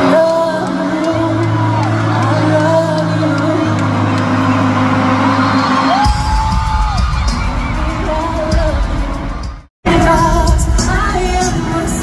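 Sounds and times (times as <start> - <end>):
live concert music: 0.0 - 12.0
crowd whooping: 1.1 - 9.4.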